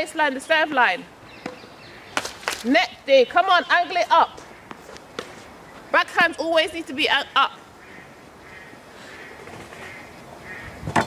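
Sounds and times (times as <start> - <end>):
distant bird calls: 0.0 - 11.0.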